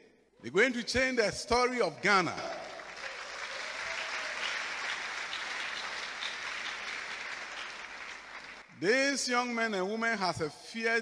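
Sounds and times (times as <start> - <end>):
audience applauding: 2.4 - 8.7.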